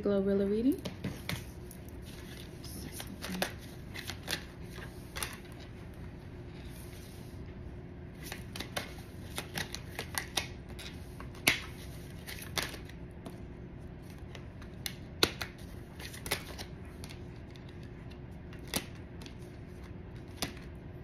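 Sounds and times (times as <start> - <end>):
cards being shuffled: 0.8 - 5.9, 8.1 - 13.4, 14.0 - 20.7.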